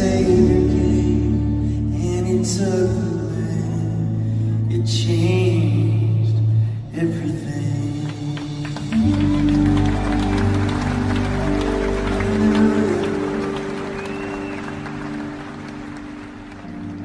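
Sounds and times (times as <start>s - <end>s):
audience applause: 8.3s - 17.0s.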